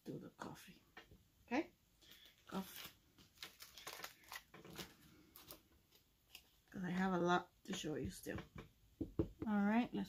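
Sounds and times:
soft plastic rustles: 2.0 - 7.2.

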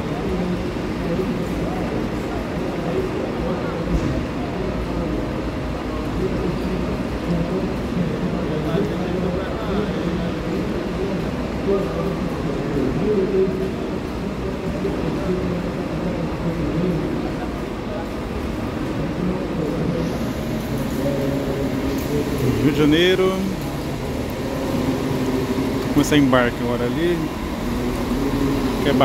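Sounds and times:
background voices: 9.8 - 29.0
diesel bus engine running: 20.0 - 29.0.

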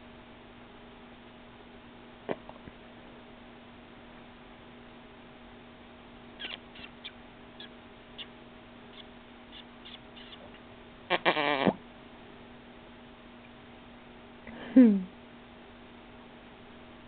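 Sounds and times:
baby squealing: 6.4 - 6.9, 9.8 - 10.4.

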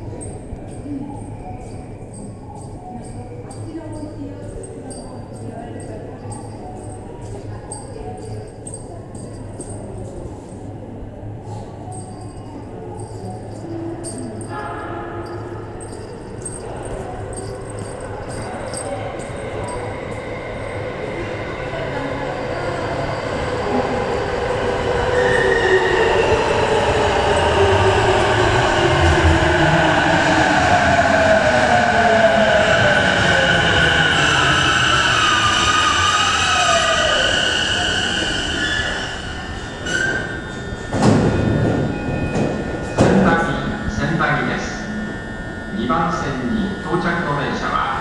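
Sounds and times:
train rumble: 0.0 - 48.0
train motor whine: 25.7 - 48.0
train doors knocking open: 39.9 - 43.7.

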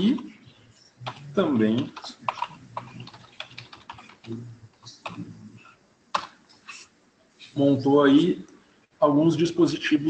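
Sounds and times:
keyboard typing: 1.0 - 5.3, 6.1 - 6.4.

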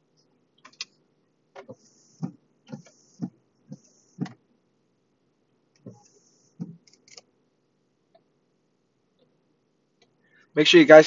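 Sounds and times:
windshield wipers sweeping glass: 1.6 - 4.4, 5.8 - 6.8.

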